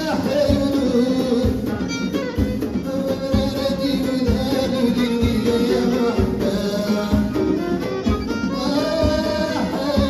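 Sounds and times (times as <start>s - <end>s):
plucked string instrument: 0.0s - 10.0s
violin: 0.0s - 10.0s.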